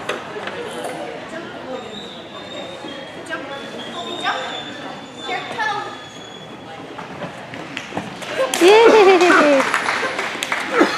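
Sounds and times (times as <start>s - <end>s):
background murmur: 0.0s - 10.9s.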